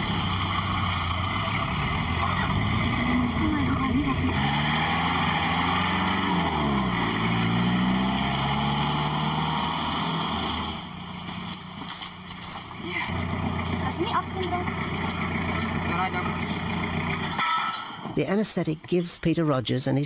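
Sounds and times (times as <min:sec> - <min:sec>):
truck engine driving: 0:00.0 - 0:19.0.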